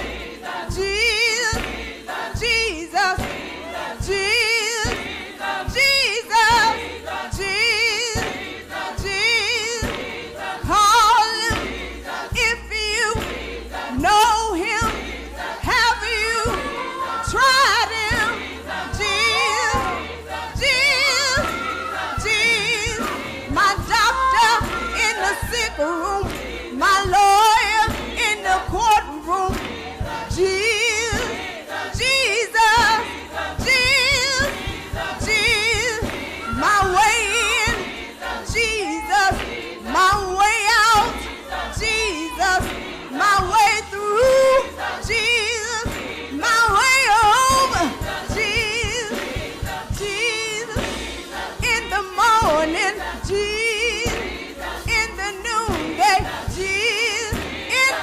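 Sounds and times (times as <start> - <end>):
choir singing: 0.0 - 58.0
woman singing lead: 0.0 - 58.0.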